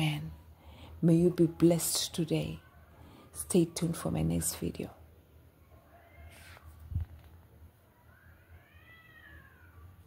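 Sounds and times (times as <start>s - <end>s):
cat meowing: 8.0s - 10.0s.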